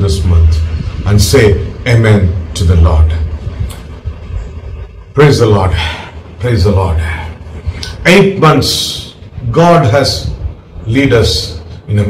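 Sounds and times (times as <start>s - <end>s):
man speaking: 0.0s - 3.3s, 5.1s - 12.0s
faint low rumble: 0.0s - 12.0s.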